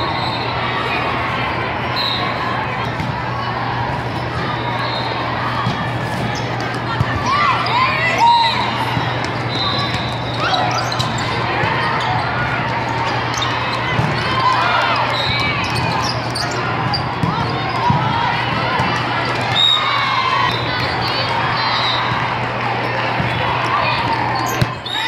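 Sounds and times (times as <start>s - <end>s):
hubbub of voices: 0.0s - 25.0s
shoes squeaking on court: 8.9s - 17.6s, 24.3s - 25.0s.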